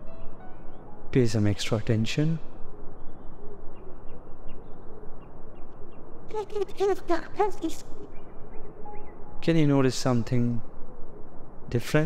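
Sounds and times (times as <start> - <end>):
faint bird chirps: 0.0 - 12.0
outdoor background hiss: 0.0 - 12.0.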